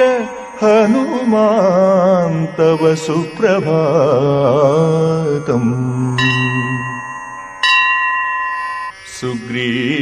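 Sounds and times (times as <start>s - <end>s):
bell ringing: 0.0s - 10.0s.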